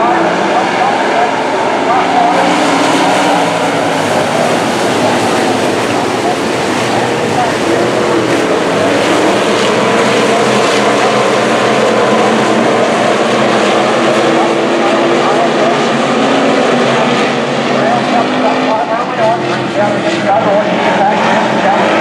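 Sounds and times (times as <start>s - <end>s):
stock car engines racing: 0.0s - 22.0s.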